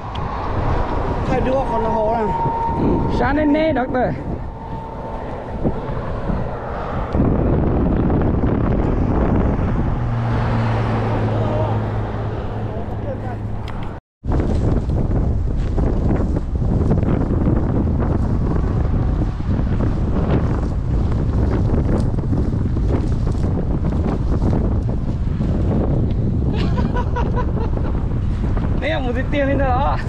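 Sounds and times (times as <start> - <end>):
wind buffeting microphone: 0.0 - 30.0
dry grass rustling: 14.3 - 25.8.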